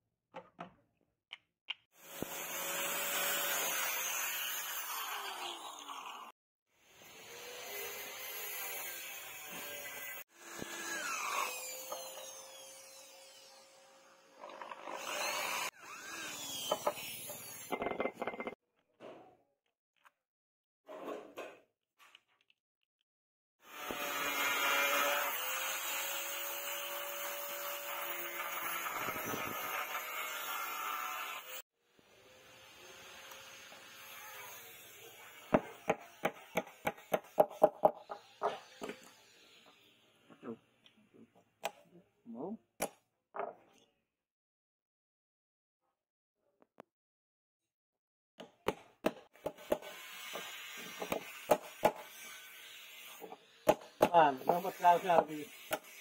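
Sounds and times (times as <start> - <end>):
angle grinder cutting metal: 2.0 - 6.3, 6.9 - 18.6, 23.6 - 37.3, 49.6 - 56.0.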